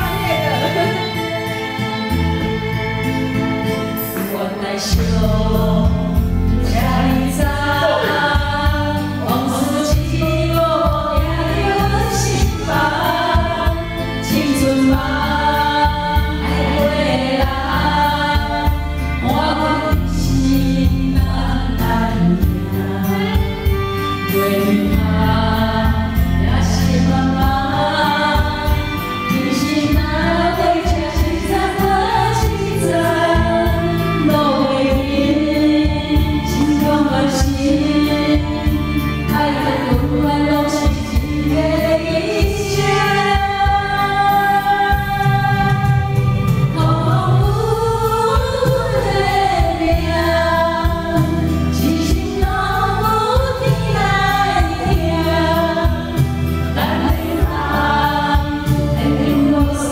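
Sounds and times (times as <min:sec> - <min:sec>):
karaoke backing track: 0:00.0 - 0:59.9
women singing together: 0:00.0 - 0:59.9.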